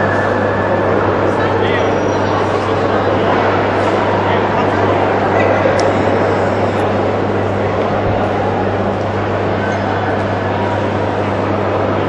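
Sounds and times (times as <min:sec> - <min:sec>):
constant low hum: 0:00.0 - 0:12.0
indistinct voices in echoing hall: 0:00.0 - 0:12.0.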